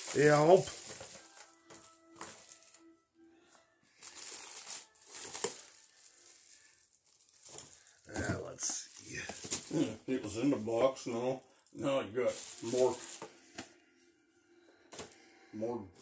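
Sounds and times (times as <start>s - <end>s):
plastic packaging crinkling: 0.0s - 2.9s, 4.0s - 13.3s.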